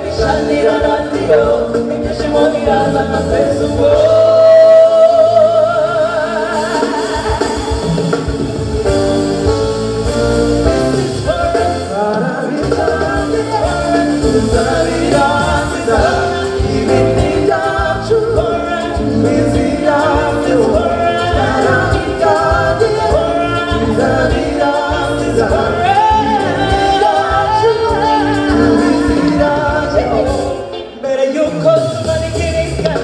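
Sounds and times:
live band playing: 0.0 - 33.0.

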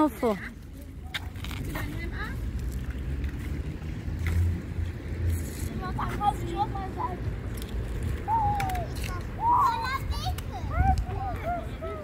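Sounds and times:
wind buffeting microphone: 7.3 - 12.0.

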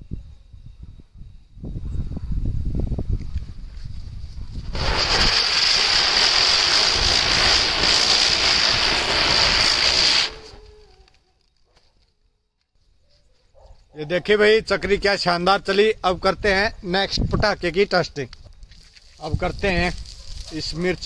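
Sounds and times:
spinning firework hissing: 4.1 - 11.0.

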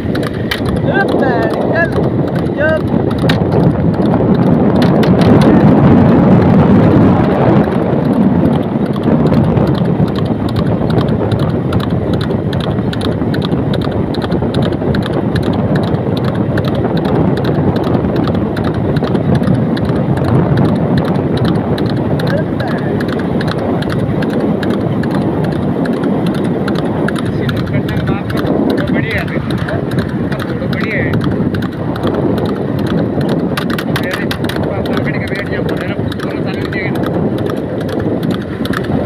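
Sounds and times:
horse hoofbeats on asphalt: 0.0 - 39.0
road noise: 0.0 - 39.0
wind noise: 0.0 - 39.0.

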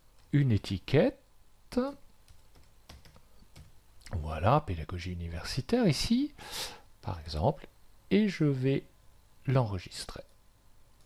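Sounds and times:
computer keyboard keystrokes: 2.2 - 3.8.

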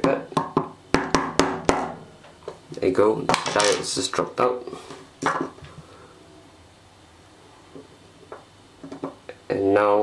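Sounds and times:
metal parts knocking on table: 3.3 - 3.9.

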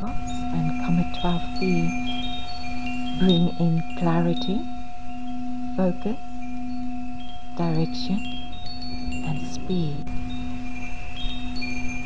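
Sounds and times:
wind chimes tinkling: 0.0 - 12.0.

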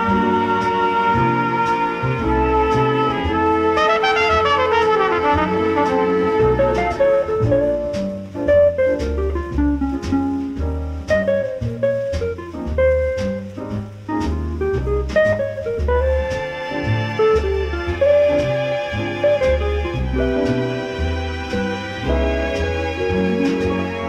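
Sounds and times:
melodic line: 0.0 - 10.6
drum kit: 0.0 - 24.0
walking bass line: 0.0 - 24.0.

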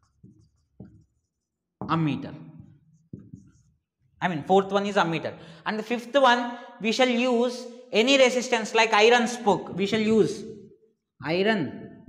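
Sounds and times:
marker writing on whiteboard: 0.0 - 4.0.

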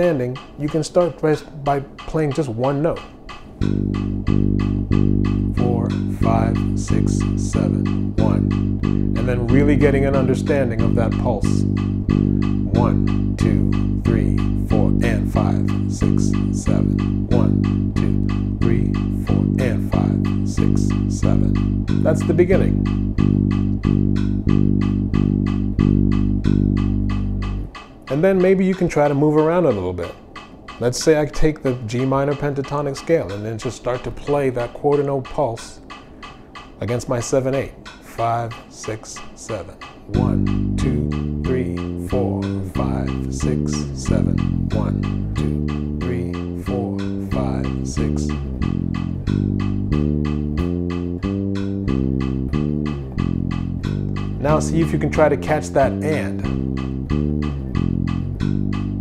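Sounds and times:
metronome clicking: 0.0 - 59.0
steady ticking: 0.0 - 59.0
electric bass guitar low note: 3.6 - 27.7, 40.1 - 59.0.

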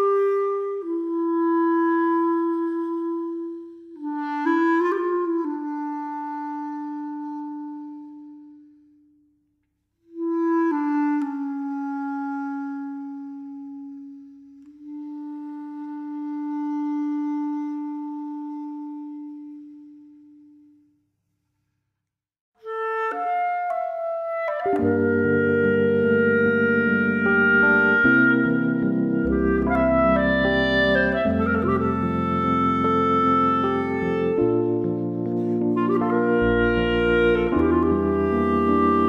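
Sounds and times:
clarinet melody: 0.0 - 9.3, 10.0 - 21.0, 22.6 - 39.0.

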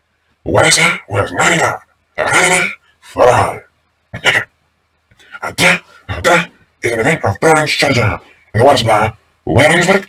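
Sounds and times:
short vocal bursts: 0.4 - 7.3.

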